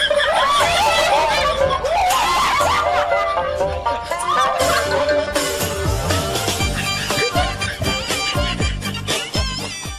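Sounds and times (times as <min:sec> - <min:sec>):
children laughing and chattering: 0:00.0 - 0:09.3.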